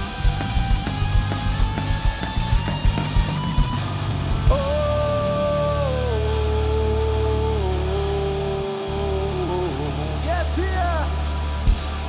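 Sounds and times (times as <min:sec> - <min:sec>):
low bass drone: 0:00.0 - 0:10.3.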